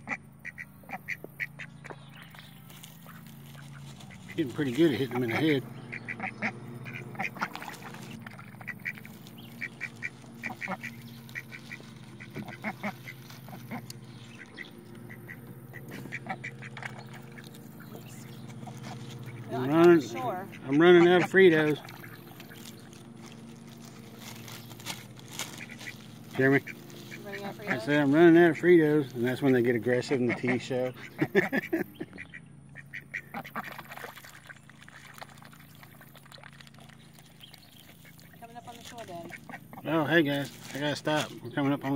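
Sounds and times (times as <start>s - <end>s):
ducks quacking: 0.0s - 41.9s
steady low hum: 0.0s - 41.9s.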